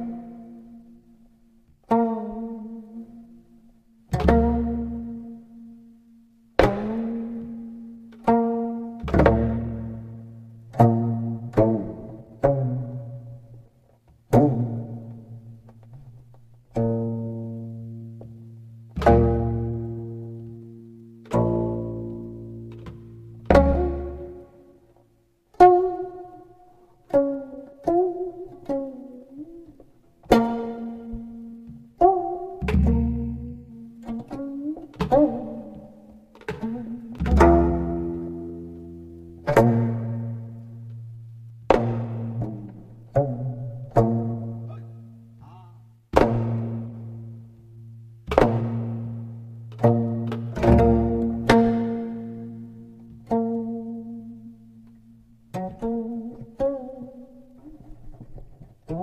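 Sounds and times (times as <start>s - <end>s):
plucked string instrument notes: 0.0s - 59.0s.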